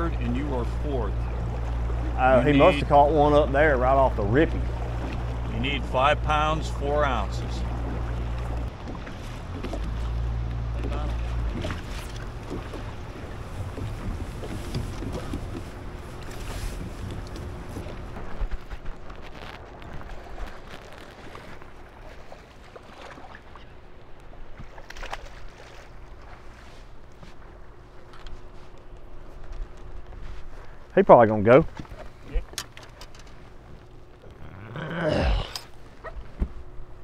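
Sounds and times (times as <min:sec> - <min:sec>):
faint steady hum: 0:00.0 - 0:37.0
water noise around hull: 0:00.0 - 0:37.0.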